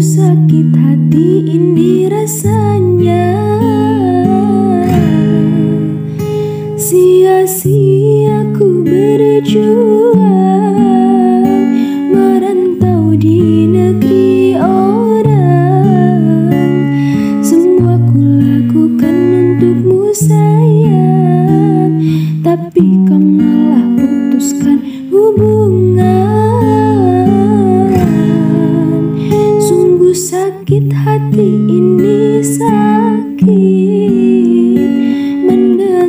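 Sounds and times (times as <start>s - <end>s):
acoustic guitar chords: 0.0s - 36.0s
woman singing: 0.0s - 36.0s.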